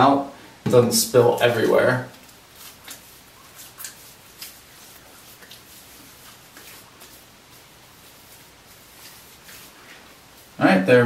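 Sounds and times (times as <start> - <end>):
hands rubbing skin: 1.3 - 10.6
soft pats on skin: 1.5 - 10.6.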